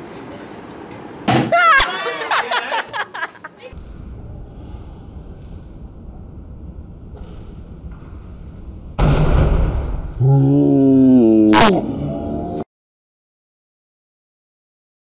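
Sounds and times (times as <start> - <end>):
voices exclaiming and laughing: 1.5 - 3.8
low background rumble: 3.7 - 10.6
balloon igniting with bang: 9.0 - 10.2.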